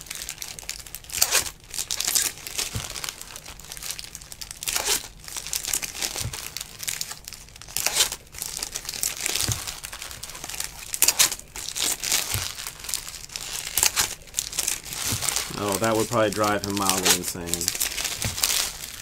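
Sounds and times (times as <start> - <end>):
card pack wrappers crinkling: 0.0 - 19.0.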